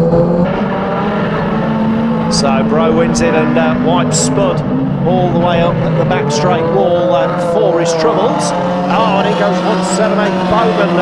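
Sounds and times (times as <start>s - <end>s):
race car engines running: 0.0s - 11.0s.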